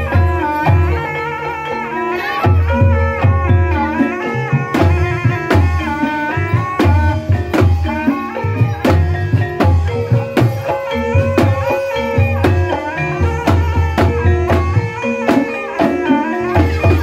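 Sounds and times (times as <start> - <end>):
gliding melody line: 0.0 - 17.0
pitched gamelan notes: 0.0 - 17.0.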